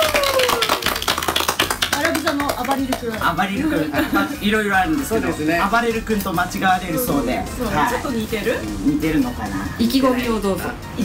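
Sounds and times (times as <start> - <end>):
people clapping: 0.0 - 3.6.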